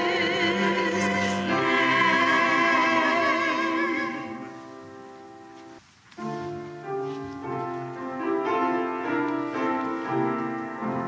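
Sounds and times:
voices singing a hymn: 0:00.0 - 0:04.7.

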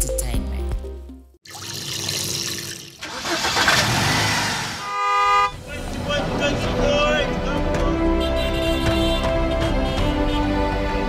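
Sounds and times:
street traffic: 0:03.1 - 0:11.0
car horn: 0:04.7 - 0:10.8.

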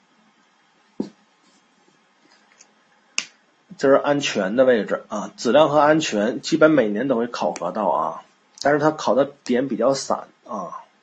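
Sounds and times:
person speaking: 0:03.2 - 0:11.0.

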